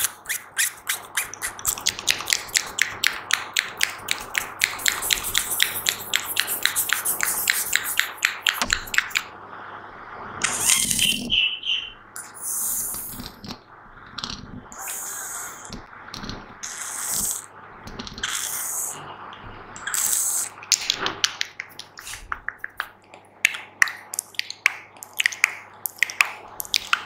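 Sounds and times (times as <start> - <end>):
fast sharp clicks: 0.0 - 9.3, 19.8 - 27.0
hissing and rustling on microphone: 3.8 - 11.3, 12.2 - 27.0.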